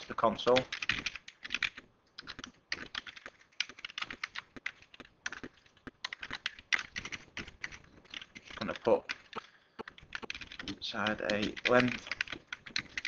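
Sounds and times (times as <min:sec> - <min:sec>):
computer keyboard typing: 0:00.3 - 0:13.0.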